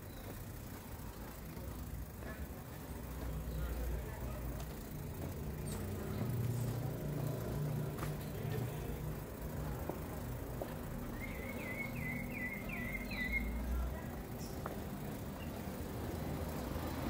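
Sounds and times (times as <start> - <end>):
vehicle engine rumbling: 0.0 - 17.0.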